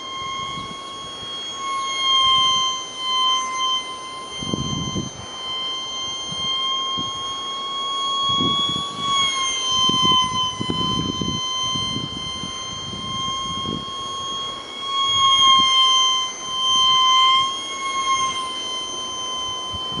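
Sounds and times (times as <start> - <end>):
electric ducted fan whining: 0.0 - 20.0.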